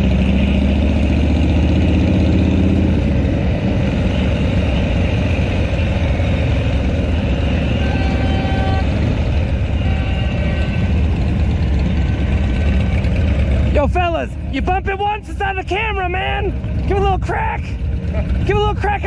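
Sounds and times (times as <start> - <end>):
motorcycle engines running: 0.0 - 19.0.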